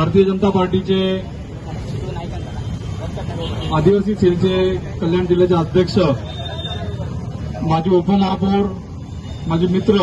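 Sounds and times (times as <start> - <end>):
low street background rumble: 0.0 - 10.0.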